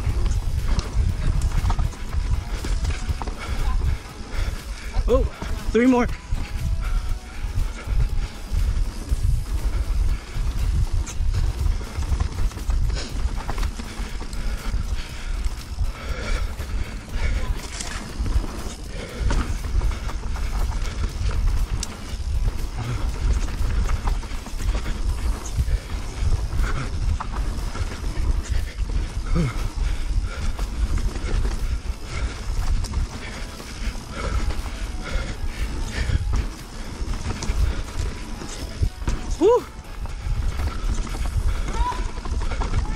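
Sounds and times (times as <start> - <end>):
bike tyre noise and chatter: 0.0 - 42.9
rider breathing out heavily: 0.0 - 42.9
wind buffeting microphone: 0.0 - 42.9.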